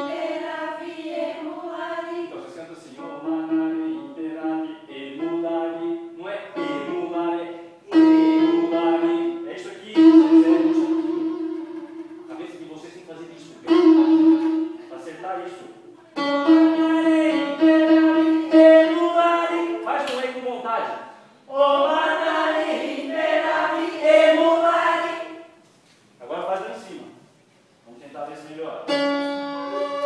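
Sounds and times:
piano notes: 0.0s - 19.8s, 28.8s - 30.0s
person speaking: 8.5s - 17.4s.

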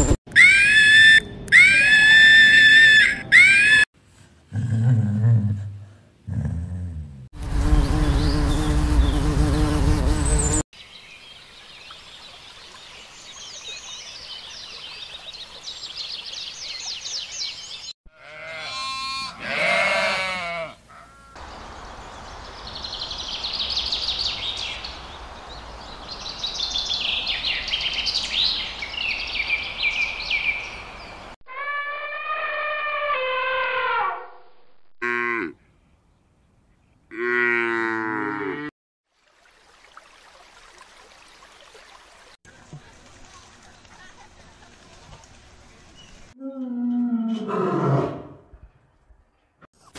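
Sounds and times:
drawn-out pitched animal call: 18.1s - 21.4s, 31.5s - 34.3s.

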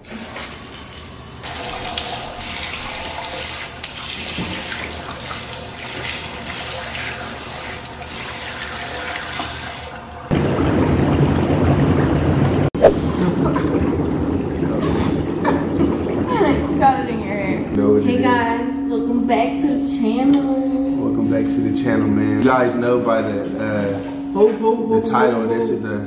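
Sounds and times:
water running into bathtub: 0.0s - 17.8s.

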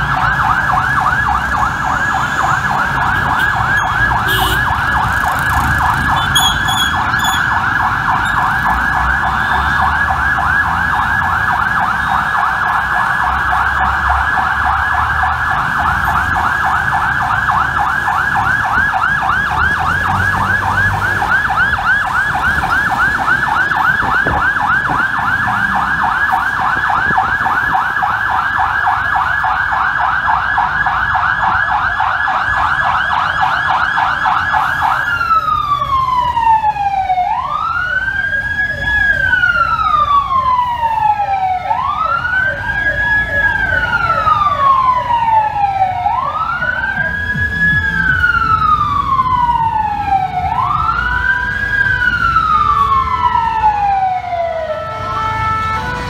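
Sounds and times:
engine and traffic rumble: 0.0s - 56.0s
fire engine siren yelping: 0.0s - 56.0s.

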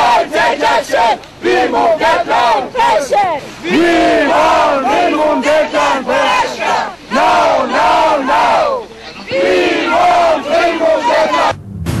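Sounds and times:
crowd shouting slogans: 0.0s - 11.5s
low rumble: 11.5s - 12.0s.

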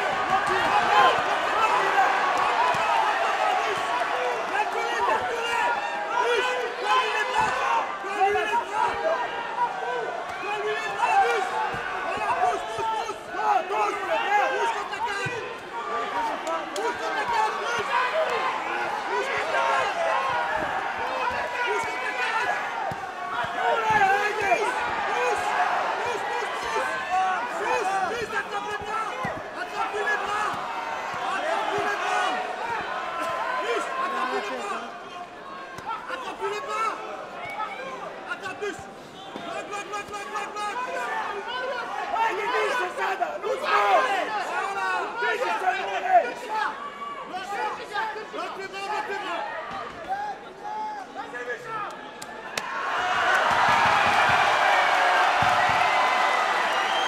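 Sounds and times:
spectators shouting: 0.0s - 57.0s.

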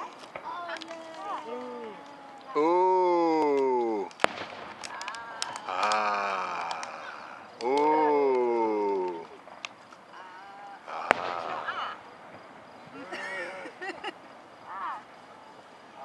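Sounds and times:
fireworks bangs and cracks: 0.0s - 2.6s, 3.4s - 15.2s
spectators exclaiming: 0.0s - 4.2s, 4.8s - 12.2s, 12.8s - 14.0s, 14.6s - 16.0s.

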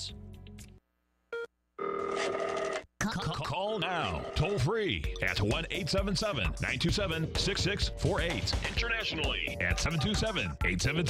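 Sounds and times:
telephone ringing: 1.4s - 2.9s, 3.8s - 4.7s.

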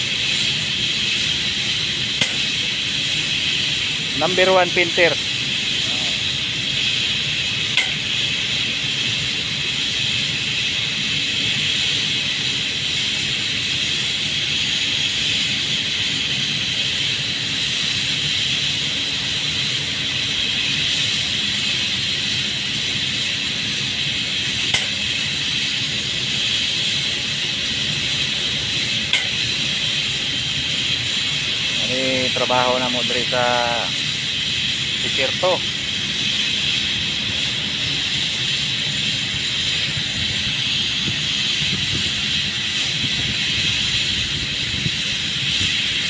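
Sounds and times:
paint spray gun hissing: 0.0s - 46.0s.

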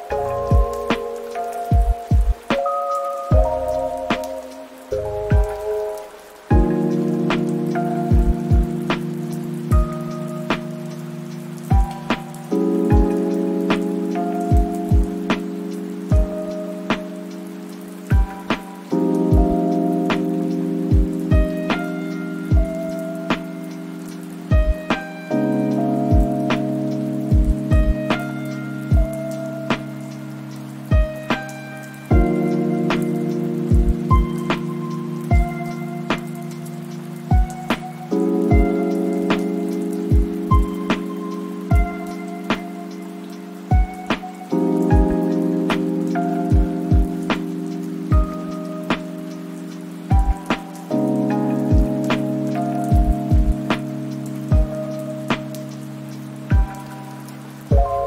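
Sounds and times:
lofi hip-hop music: 0.0s - 58.0s
steady rain: 0.0s - 58.0s.

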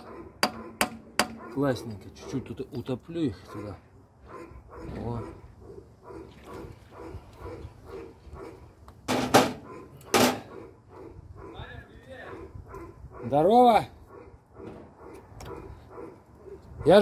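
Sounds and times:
animal calling: 0.0s - 8.8s, 9.4s - 17.0s.

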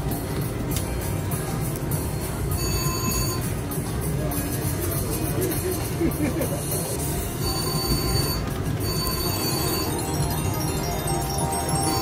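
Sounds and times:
slot machine bonus music: 7.2s - 12.0s.

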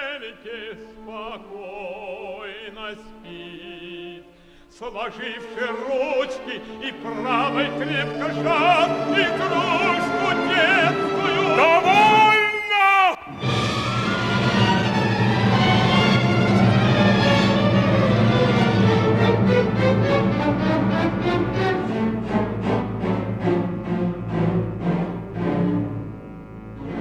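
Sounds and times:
person singing: 0.0s - 13.5s
opera orchestra playing: 0.0s - 27.0s.

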